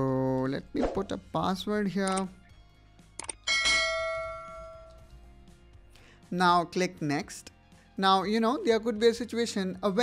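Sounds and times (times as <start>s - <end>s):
quick clicks: 3.2s - 3.4s
bell ding: 3.5s - 5.0s.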